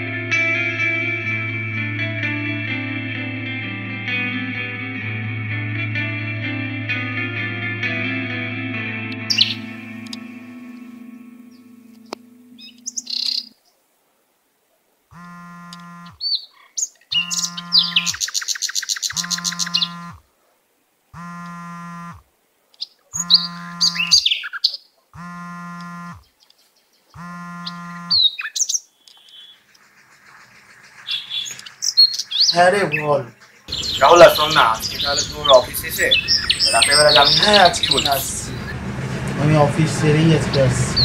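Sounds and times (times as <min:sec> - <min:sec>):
electric guitar chord: 0:00.0 - 0:13.0
birds chirping: 0:09.2 - 0:13.8, 0:15.1 - 0:20.3, 0:21.2 - 0:41.0
phone buzzing on vibrate: 0:15.1 - 0:16.2, 0:17.2 - 0:18.2, 0:19.2 - 0:20.2, 0:21.2 - 0:22.2, 0:23.2 - 0:24.2, 0:25.2 - 0:26.2, 0:27.2 - 0:28.2.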